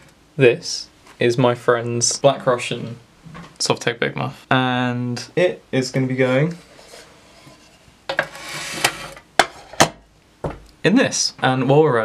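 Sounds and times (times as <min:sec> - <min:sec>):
metal box sliding across wood: 0:06.2 - 0:09.8.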